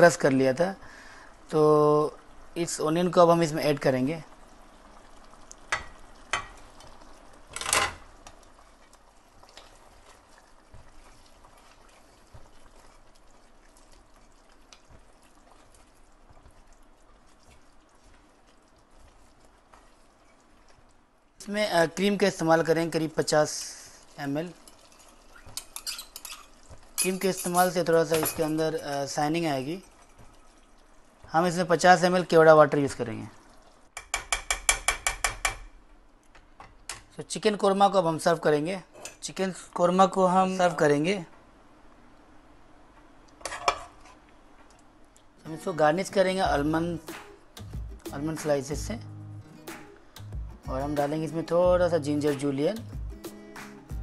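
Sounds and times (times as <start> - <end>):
thick gravy bubbling in a pot: 0.0 - 41.1
spatula clicking while stirring: 8.2 - 21.0, 24.0 - 31.4, 34.0 - 35.7
spatula knocking metal pan: 34.0 - 35.8.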